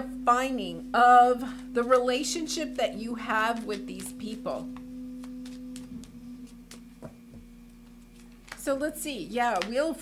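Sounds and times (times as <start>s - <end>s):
low ringing tone: 0.0s - 9.2s
cards being shuffled: 7.8s - 8.7s.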